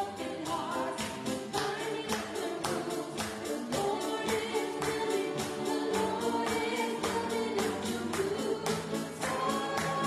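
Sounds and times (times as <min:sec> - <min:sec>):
woman singing into microphone: 0:00.0 - 0:10.0.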